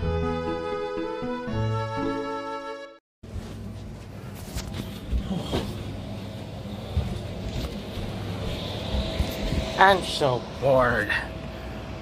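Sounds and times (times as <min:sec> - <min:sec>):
steady room hum: 0:03.2 - 0:12.0.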